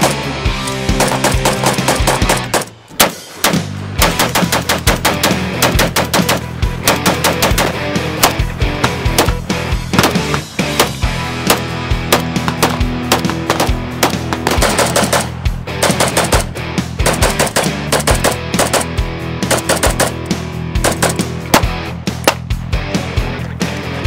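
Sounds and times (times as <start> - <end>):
rifle gunshots: 0.0 - 0.3, 0.9 - 22.5
background music: 0.0 - 24.0.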